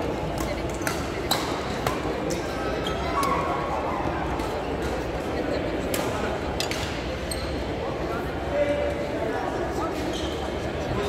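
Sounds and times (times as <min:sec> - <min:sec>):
echoing murmur of voices: 0:00.0 - 0:11.0
rackets hitting shuttlecock: 0:00.1 - 0:03.4
shoe squeak: 0:02.8 - 0:03.2, 0:07.2 - 0:07.7, 0:09.9 - 0:10.6.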